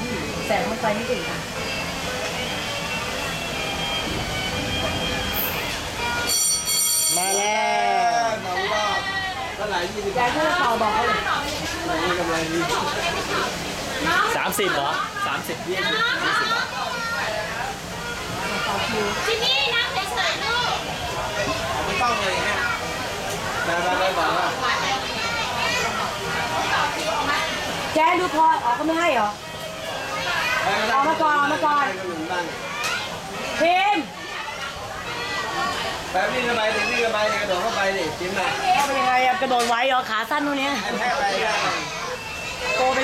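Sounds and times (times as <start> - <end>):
high steady tone: 1.5 - 8.4
people talking: 4.8 - 43.0.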